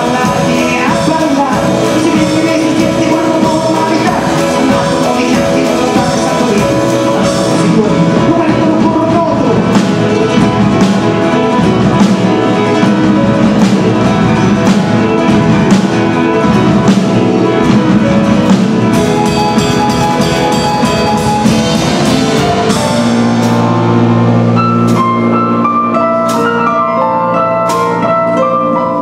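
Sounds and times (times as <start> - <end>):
drum kit beat: 0.0 - 28.2
acoustic guitar: 0.0 - 29.0
grand piano: 0.0 - 29.0
cymbals: 9.4 - 26.6.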